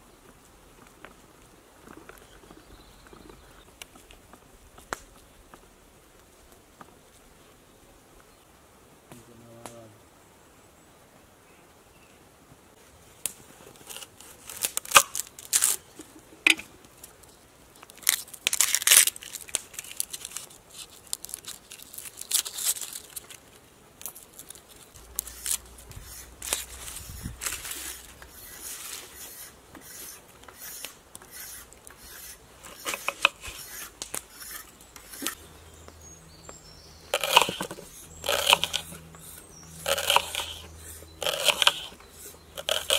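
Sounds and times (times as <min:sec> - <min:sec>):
onion skin tearing: 0:13.8 - 0:15.8, 0:17.9 - 0:23.4, 0:24.0 - 0:28.7, 0:37.2 - 0:39.0
knife cutting onion on wooden board: 0:37.2 - 0:39.0.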